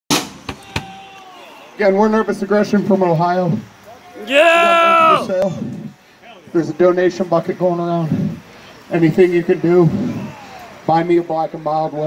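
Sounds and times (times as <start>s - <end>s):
man talking through microphone: 4.3s - 5.3s.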